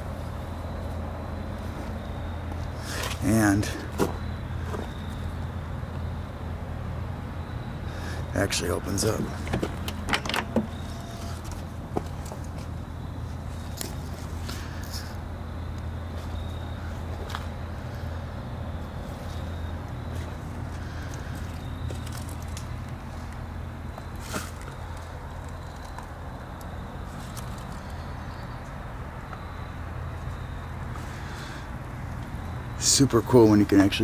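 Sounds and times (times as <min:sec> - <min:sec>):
car door clicks and knocks: 0:09.4 - 0:10.8.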